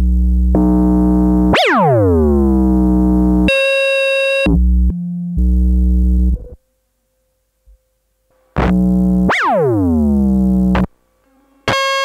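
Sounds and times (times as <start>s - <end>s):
synthesizer held notes: 0.0s - 3.6s, 8.6s - 10.9s.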